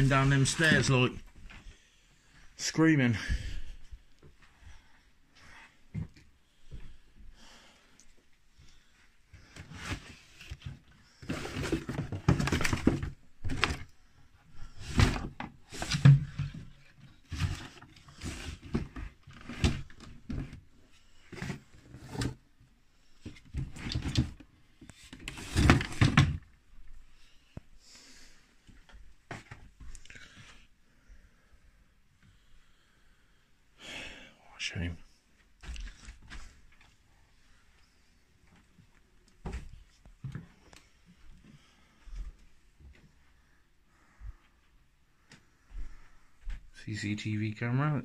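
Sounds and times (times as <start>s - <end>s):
objects knocked and rustled: 9.6s - 13.9s, 14.8s - 20.6s, 23.2s - 26.6s
drawer sliding open and shut: 25.2s - 26.4s.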